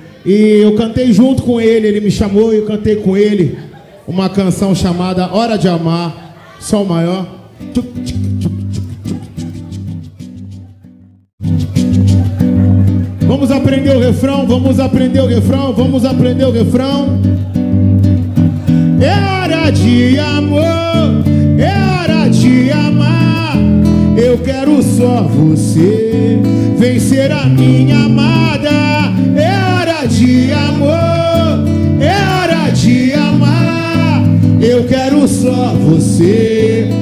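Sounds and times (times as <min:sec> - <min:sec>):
acoustic guitar strumming chords: 0:07.5 - 0:37.0
man singing: 0:07.6 - 0:09.6, 0:13.1 - 0:17.4, 0:18.6 - 0:37.0
bass line: 0:07.6 - 0:37.0.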